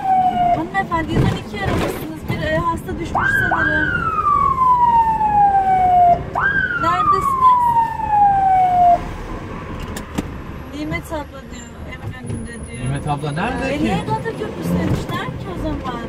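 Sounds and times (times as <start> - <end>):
ambulance siren sweeps: 0.0 - 1.0, 3.1 - 9.7
engine and road noise: 0.0 - 16.0.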